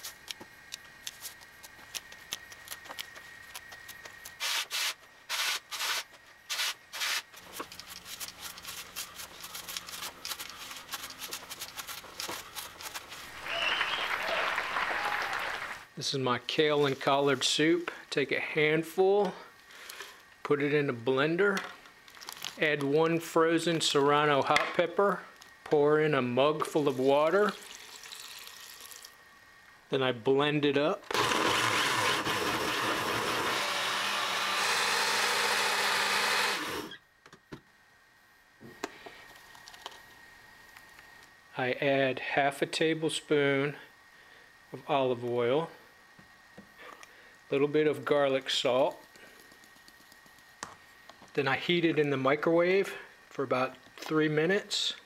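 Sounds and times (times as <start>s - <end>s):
water pouring into blender jar: 27.6s - 29.1s.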